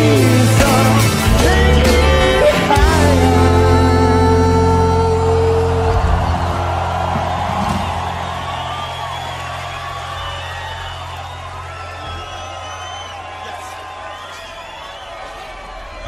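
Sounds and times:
crowd cheering and whistling: 0:00.0 - 0:16.0.

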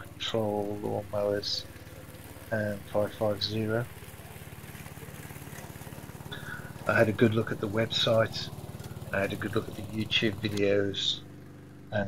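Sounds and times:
voice-over speech: 0:00.0 - 0:01.6, 0:02.5 - 0:03.9, 0:06.4 - 0:08.5, 0:09.2 - 0:11.2
mower engine running: 0:00.0 - 0:12.0.

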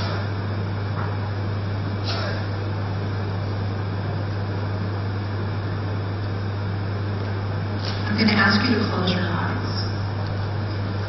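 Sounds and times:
low even hum: 0:00.0 - 0:11.0.

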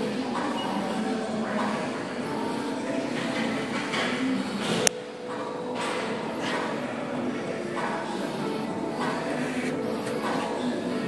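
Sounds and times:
murmur of a gym room: 0:00.0 - 0:11.0.

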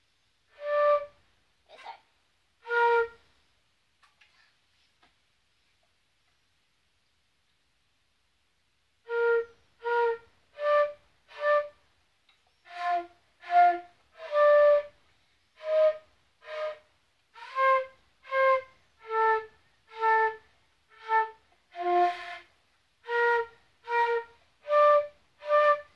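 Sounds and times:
flute melody: 0:00.5 - 0:01.3, 0:02.6 - 0:03.3, 0:09.0 - 0:11.8, 0:12.6 - 0:15.0, 0:15.6 - 0:25.9.

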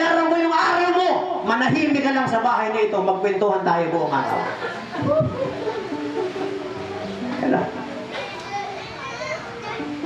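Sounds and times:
faint music: 0:00.0 - 0:10.0
children chattering and calling: 0:03.8 - 0:10.0.

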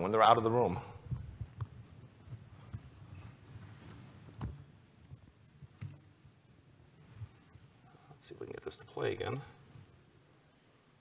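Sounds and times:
faint low thumps: 0:01.0 - 0:03.4.

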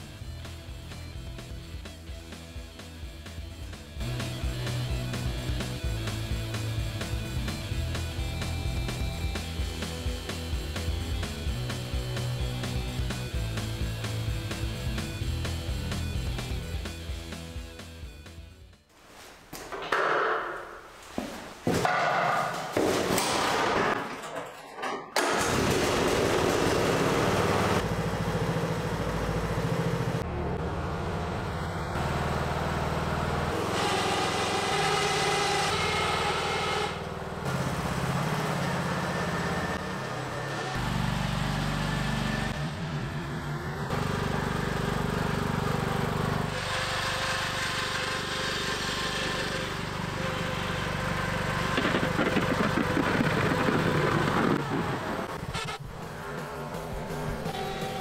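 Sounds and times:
lawn tractor engine running: 0:25.2 - 0:34.4, 0:40.8 - 0:55.3.

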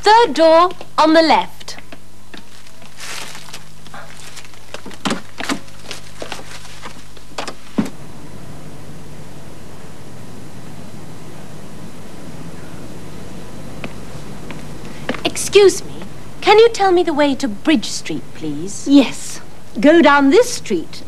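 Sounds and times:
tape hiss and low hum: 0:00.0 - 0:21.0.

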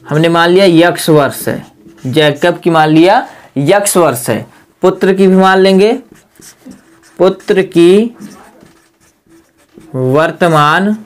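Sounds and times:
person speaking: 0:00.0 - 0:11.0
marker writing on whiteboard: 0:00.1 - 0:03.1, 0:04.9 - 0:11.0.

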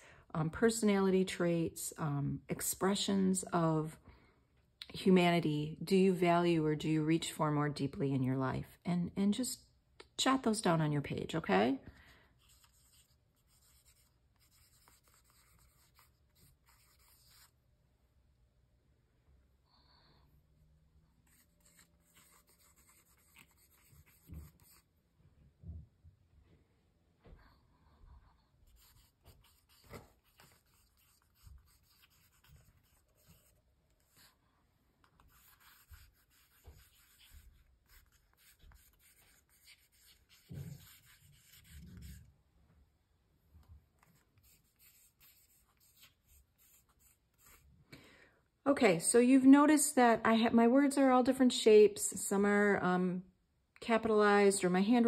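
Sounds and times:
pencil scratching on paper: 0:12.4 - 0:17.6, 0:21.2 - 0:24.9, 0:28.7 - 0:34.4, 0:35.0 - 0:42.3, 0:44.1 - 0:47.7.

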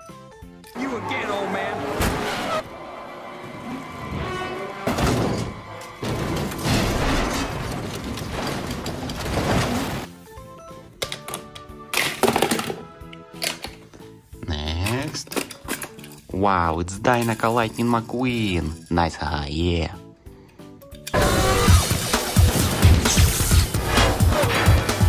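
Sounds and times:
soundtrack music: 0:00.1 - 0:08.8, 0:20.8 - 0:25.0
race car crashing and tumbling: 0:01.3 - 0:02.8, 0:03.5 - 0:10.1.

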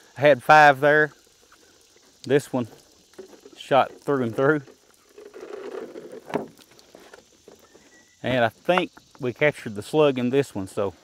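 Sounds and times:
water splashing onto grass: 0:00.0 - 0:10.9.

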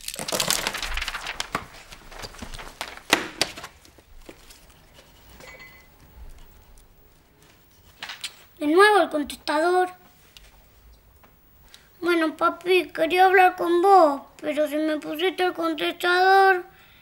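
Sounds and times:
small objects clattering and rustling: 0:00.0 - 0:08.5.

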